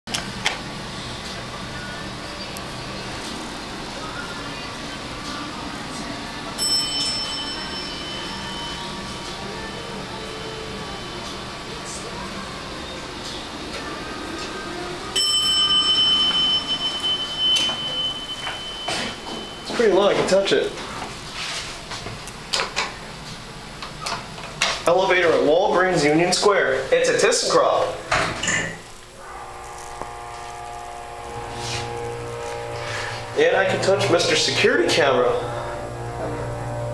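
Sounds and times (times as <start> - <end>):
elevator pump motor humming: 0.1 - 21.3, 27.4 - 36.9
elevator chime: 6.5 - 11.8, 15.0 - 21.0
low hum: 28.0 - 36.9.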